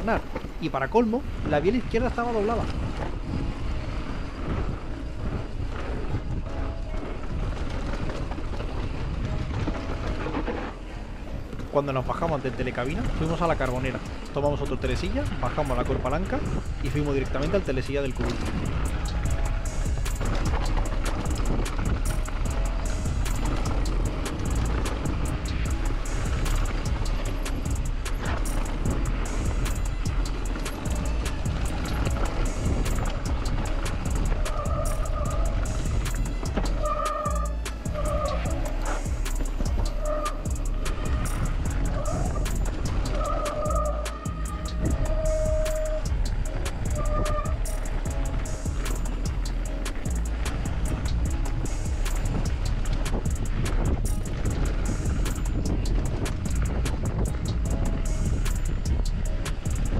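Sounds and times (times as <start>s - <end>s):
bike tyre and frame rumble: 0.0s - 59.9s
wind rush: 0.0s - 59.9s
short squealing tones: 41.1s - 46.1s.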